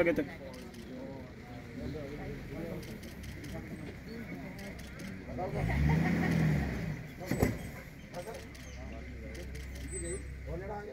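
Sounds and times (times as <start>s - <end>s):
vehicle engine low hum: 0.0s - 10.9s.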